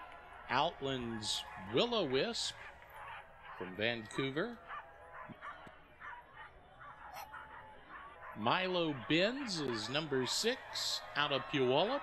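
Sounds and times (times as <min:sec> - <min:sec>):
dogs barking and yipping: 0:00.3 - 0:12.0.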